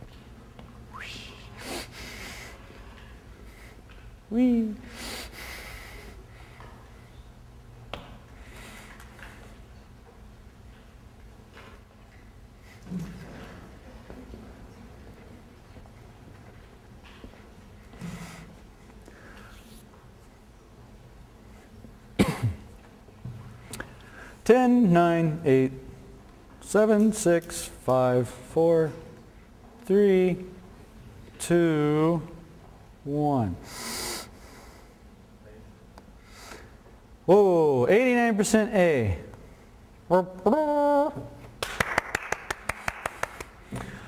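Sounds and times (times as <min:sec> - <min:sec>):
person coughing: 0:22.2 - 0:22.7
hand clapping: 0:41.5 - 0:44.0.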